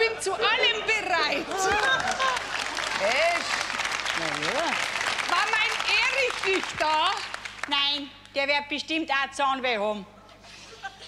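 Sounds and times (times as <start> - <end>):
people laughing: 0.0 - 3.0, 10.3 - 11.0
audience applauding: 1.7 - 7.7.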